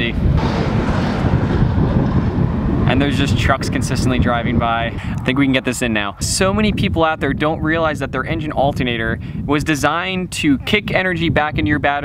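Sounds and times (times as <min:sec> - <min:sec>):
trucks driving by: 0:00.0 - 0:06.6
wind buffeting microphone: 0:00.0 - 0:12.0.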